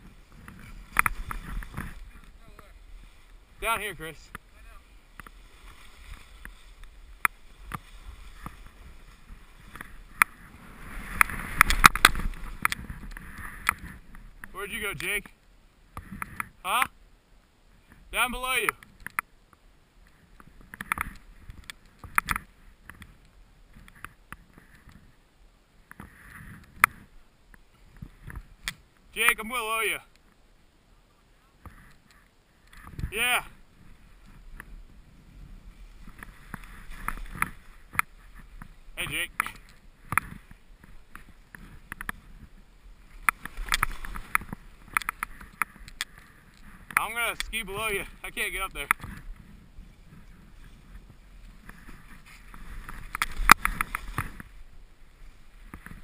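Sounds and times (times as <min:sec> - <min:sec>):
ski clicks and knocks: 0:00.0 - 0:02.7, 0:05.1 - 0:15.3, 0:20.1 - 0:25.1, 0:35.9 - 0:56.0.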